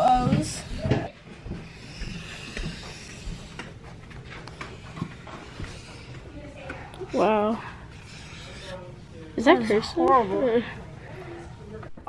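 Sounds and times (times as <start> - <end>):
marker scratching on poster board: 0.0 - 10.6.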